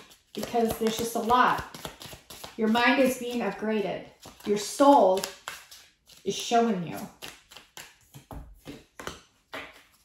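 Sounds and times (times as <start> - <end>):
cards shuffling: 0.0 - 10.0.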